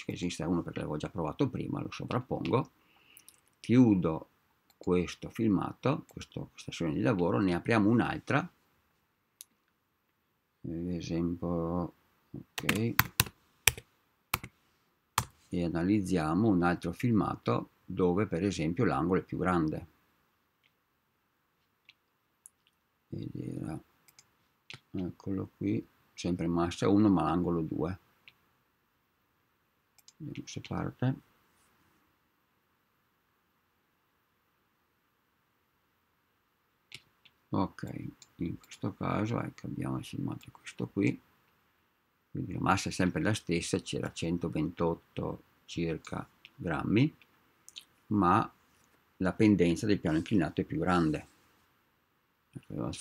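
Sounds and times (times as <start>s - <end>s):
faint room hiss: 0.0s - 53.0s
keyboard keystrokes: 12.6s - 13.8s.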